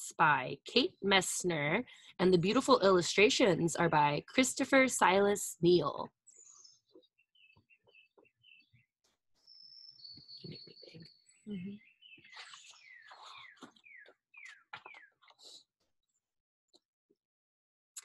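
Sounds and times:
bird chirping: 6.3 - 15.6.

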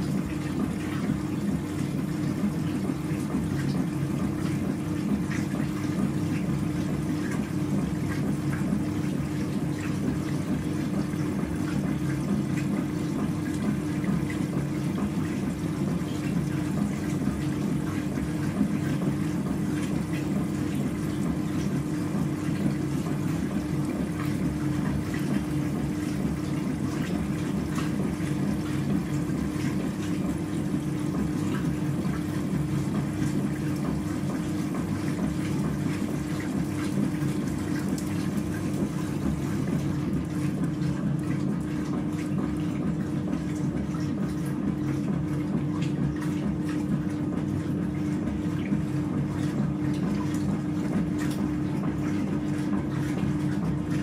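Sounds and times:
washing machine hum: 0.0 - 54.0
water sloshing in washing machine: 0.0 - 54.0.

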